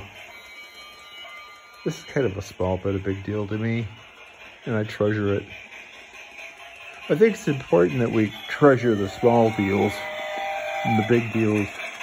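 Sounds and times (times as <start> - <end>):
faint steady high tones: 0.0 - 5.6, 6.5 - 12.0
man's voice: 7.0 - 12.0.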